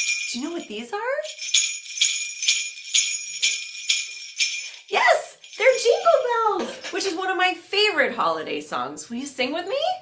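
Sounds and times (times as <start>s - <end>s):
jingle bells shaken: 0.0s - 7.3s
woman speaking: 0.3s - 1.3s, 4.8s - 10.0s.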